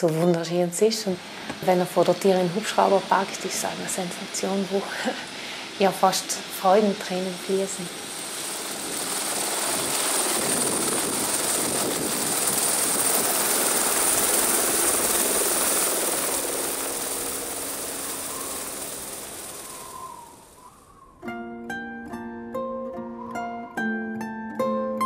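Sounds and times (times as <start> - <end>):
high turbine whine: 0.7 - 21.2
helicopter rotor and engine noise: 1.0 - 20.6.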